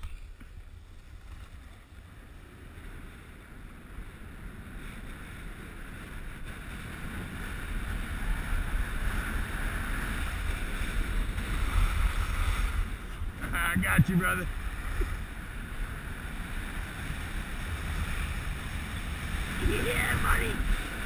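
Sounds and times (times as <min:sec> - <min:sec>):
skis sliding on snow: 0:00.0 - 0:21.0
wind on microphone: 0:00.0 - 0:21.0.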